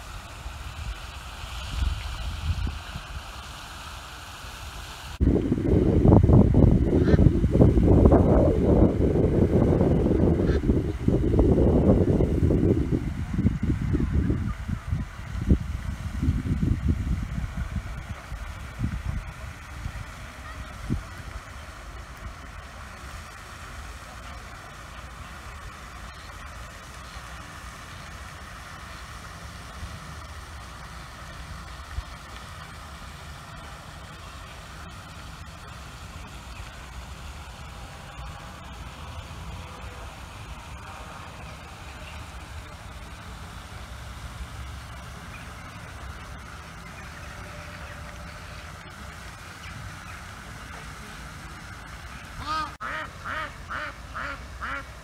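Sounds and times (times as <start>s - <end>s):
duck quacking: 7.0s - 7.2s, 52.4s - 54.9s.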